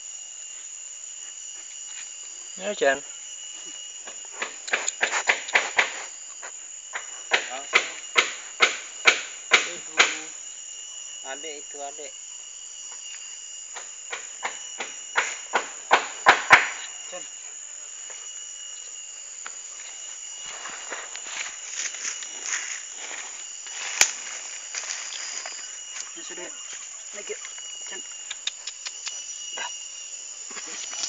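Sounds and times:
insects buzzing: 0.0s - 31.0s
sharp clicks: 28.2s - 29.2s.

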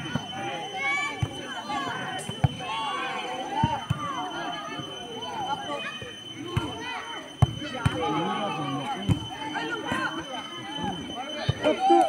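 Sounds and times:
spectators shouting: 0.0s - 12.0s.

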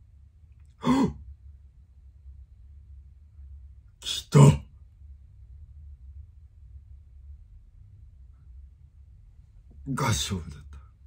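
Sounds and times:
low room hum: 0.0s - 11.0s
man sighing: 0.8s - 1.2s.

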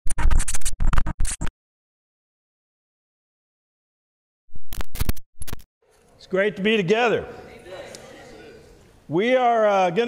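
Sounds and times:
glitchy electronic stutter with bass: 0.1s - 1.5s, 4.5s - 5.7s.

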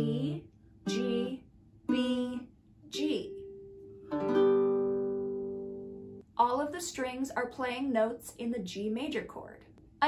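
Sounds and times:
ukulele chord strummed: 0.0s - 2.4s, 3.0s - 6.2s.

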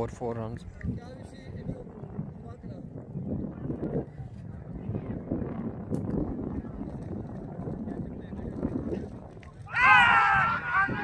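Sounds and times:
muffled voices: 0.0s - 9.7s
wind rumbling on microphone: 0.0s - 11.0s.

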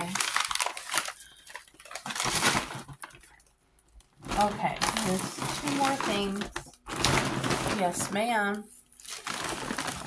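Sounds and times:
gift bag rustling and crinkling: 0.0s - 3.5s, 4.2s - 10.0s.

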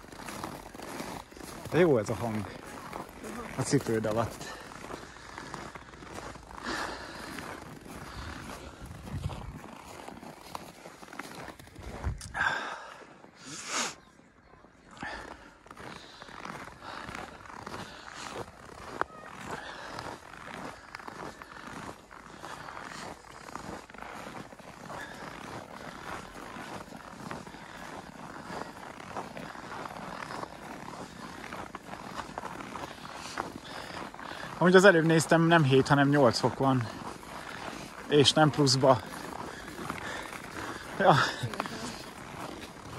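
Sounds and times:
footsteps crunching on snow: 0.0s - 42.9s.

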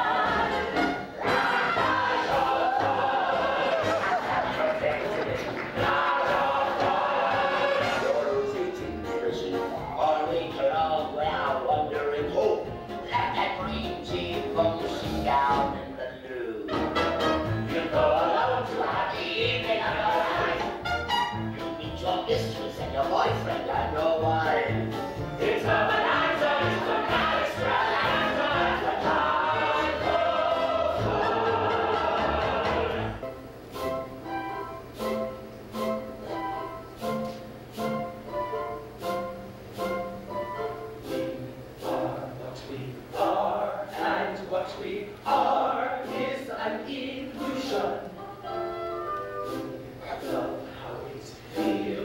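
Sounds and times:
massed voices singing: 0.0s - 15.8s, 17.4s - 33.3s, 41.0s - 52.0s
theatre orchestra playing: 0.0s - 44.4s, 45.3s - 52.0s.

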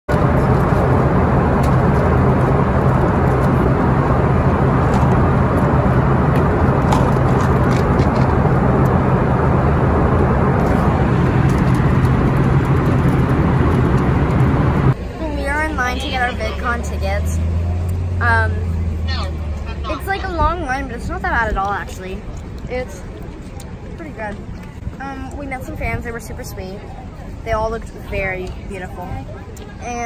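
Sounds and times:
airliner cabin roar: 0.1s - 21.4s
low hum: 0.1s - 22.6s.

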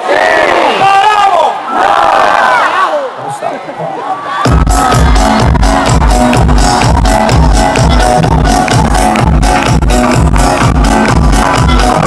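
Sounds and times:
crowd shouting and cheering: 0.0s - 12.0s.

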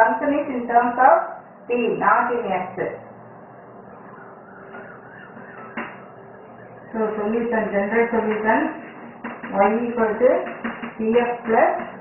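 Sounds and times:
faint continuous hum: 0.0s - 12.0s.

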